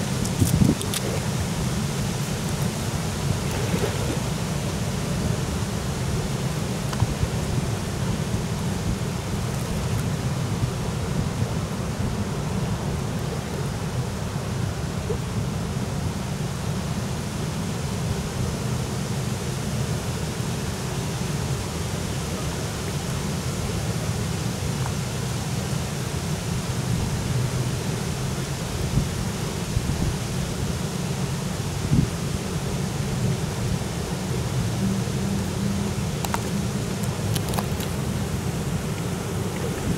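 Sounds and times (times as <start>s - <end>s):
wind noise on microphone: 0.0s - 13.4s, 26.8s - 39.9s.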